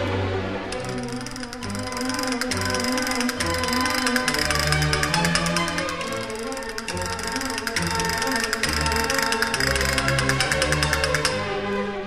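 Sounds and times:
baroque instrumental accompaniment: 0.0 - 12.0
castanets clicking in rolls: 0.7 - 11.5.

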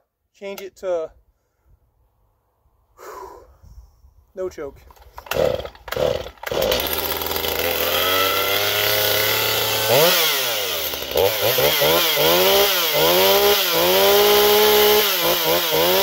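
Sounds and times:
chainsaw pull-started: 4.9 - 16.0
chainsaw engine revving: 5.0 - 16.0.

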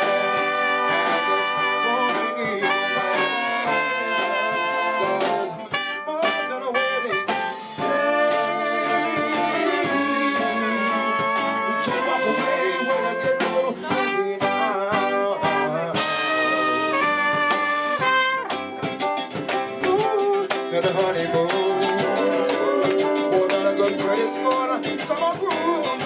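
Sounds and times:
electric guitar: 0.0 - 26.0
horns: 0.0 - 26.0
live band playing: 0.0 - 26.0.

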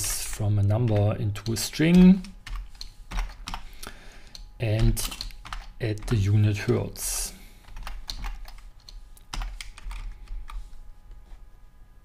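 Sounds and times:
computer keyboard typing: 0.6 - 6.4, 7.6 - 10.6.

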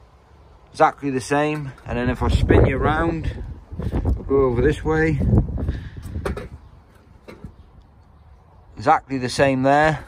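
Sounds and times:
wind buffeting microphone: 1.8 - 8.5
microphone handling knocks: 6.0 - 7.6.

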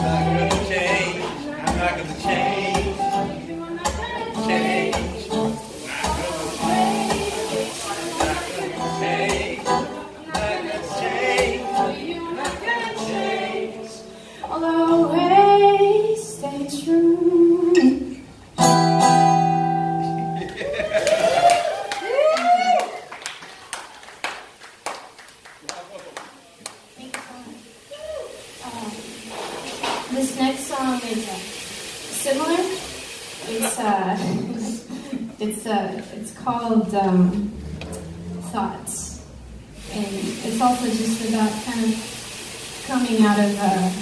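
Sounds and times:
strummed acoustic guitar: 0.0 - 15.4, 17.2 - 20.4, 36.8 - 39.8
voices: 0.0 - 17.5, 25.6 - 44.0
person singing: 0.0 - 18.2
hand claps: 20.4 - 27.4.

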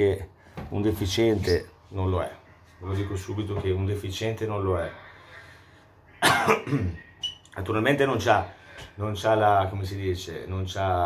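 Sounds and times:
man coughing: 6.2 - 7.0.

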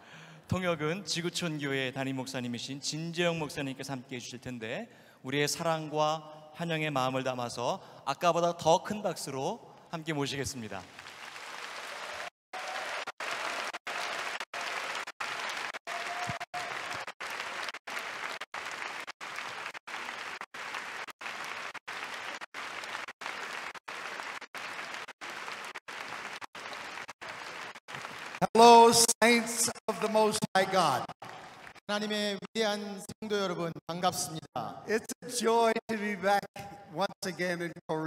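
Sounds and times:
man's amplified voice: 0.5 - 10.9, 28.4 - 31.2, 31.9 - 38.0
audience applauding: 10.9 - 29.2, 30.4 - 31.9.

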